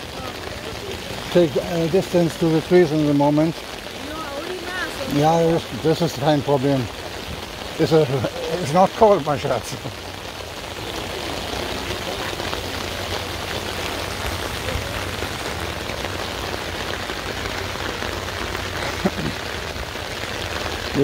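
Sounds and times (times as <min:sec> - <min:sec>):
rain pattering on an umbrella: 0:00.0 - 0:21.0.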